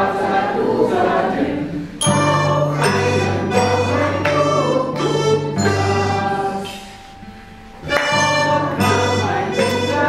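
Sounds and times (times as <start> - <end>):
piano accordion chords: 1.8 - 10.0
plucked cello: 2.0 - 10.0.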